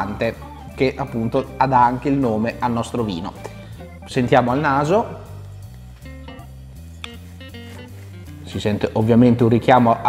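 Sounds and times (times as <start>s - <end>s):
plucked guitar notes: 0.0s - 5.4s, 6.0s - 8.6s
bass line: 0.0s - 9.8s.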